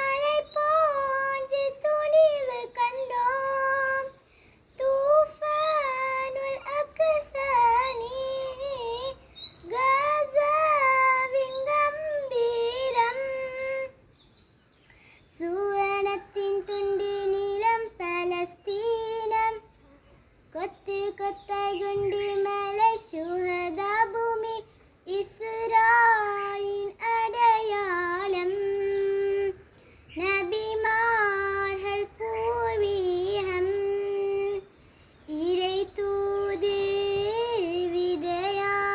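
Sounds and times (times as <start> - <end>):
girl singing unaccompanied: 0.0 - 38.9.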